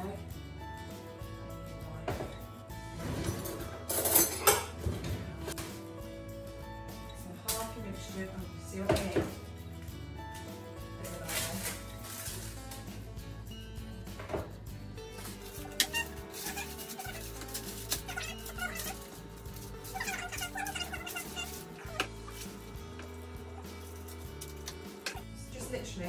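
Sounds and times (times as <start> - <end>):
background music with bass line: 0.0 - 26.0.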